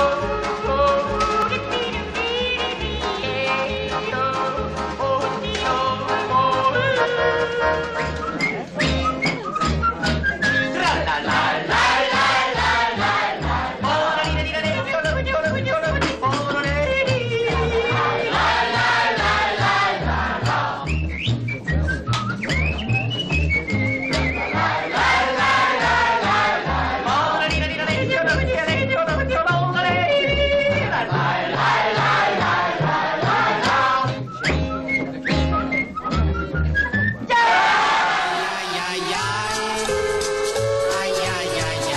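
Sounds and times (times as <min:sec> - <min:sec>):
person yodeling: 0:00.0 - 0:08.3, 0:38.2 - 0:41.9
band accompaniment with bass beat: 0:00.0 - 0:41.9
whistled tune: 0:06.9 - 0:10.8, 0:20.8 - 0:26.0, 0:34.0 - 0:37.3, 0:38.8 - 0:41.9.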